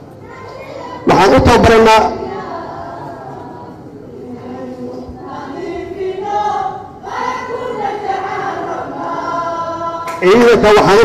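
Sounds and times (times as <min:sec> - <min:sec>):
group singing held notes: 0:02.2 - 0:10.4.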